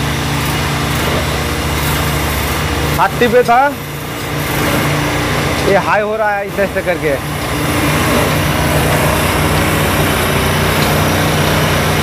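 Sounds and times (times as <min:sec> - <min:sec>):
single-cylinder engine running: 0:00.0 - 0:12.0.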